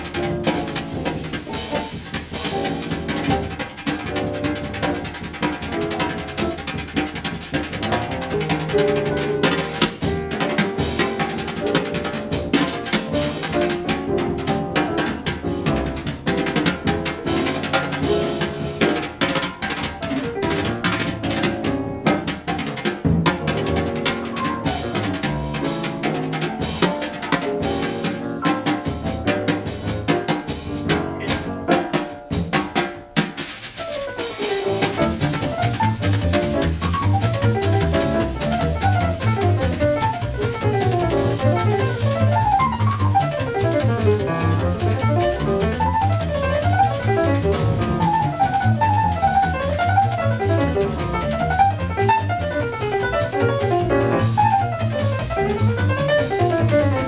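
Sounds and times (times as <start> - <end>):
double bass line: 0.0 - 19.2, 23.0 - 26.8, 34.5 - 57.0
drum kit hits: 0.0 - 57.0
piano fast runs: 0.0 - 57.0.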